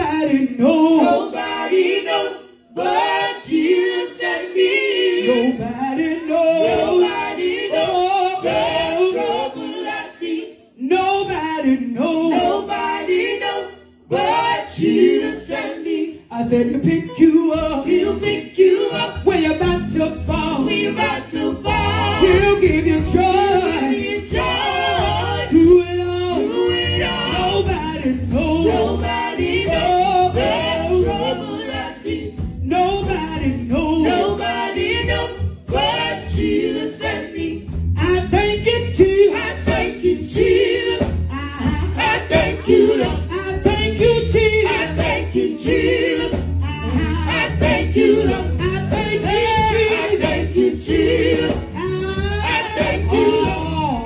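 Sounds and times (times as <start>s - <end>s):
vocal group singing gospel: 0.0s - 54.0s.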